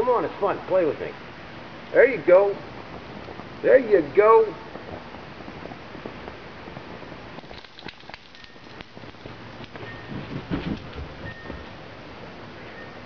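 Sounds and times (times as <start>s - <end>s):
steady low hiss: 0.0s - 13.0s
rustling noise: 4.6s - 12.0s.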